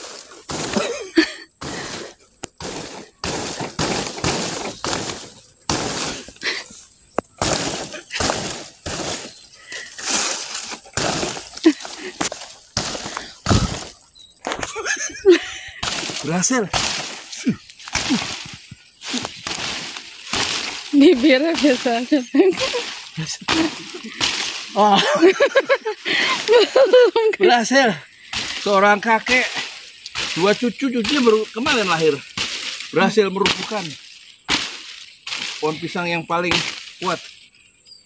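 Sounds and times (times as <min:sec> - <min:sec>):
stalk snapping: 0:00.0 - 0:01.0, 0:01.6 - 0:14.8, 0:15.8 - 0:25.1, 0:28.3 - 0:37.4
dry leaves rustling and crackling: 0:00.0 - 0:15.2, 0:15.8 - 0:37.5
small cracks: 0:15.8 - 0:21.9, 0:28.4 - 0:35.8.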